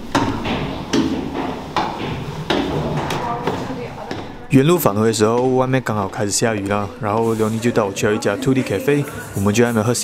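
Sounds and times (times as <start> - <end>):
footsteps on metal stairs: 0.0 - 7.8.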